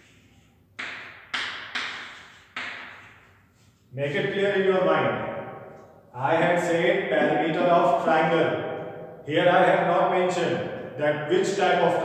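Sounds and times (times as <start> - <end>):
chalk strokes on blackboard: 0.0 - 4.0.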